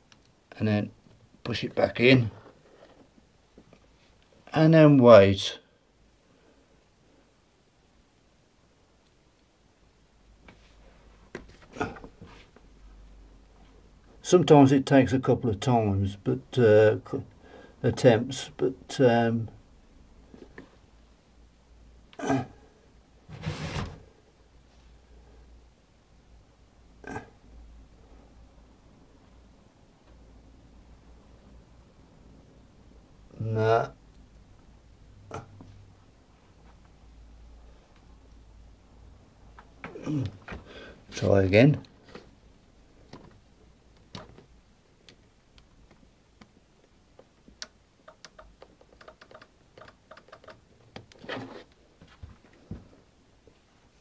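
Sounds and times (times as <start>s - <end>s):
short throat sound: 22.2s - 22.6s, 27.0s - 27.4s, 35.2s - 35.7s.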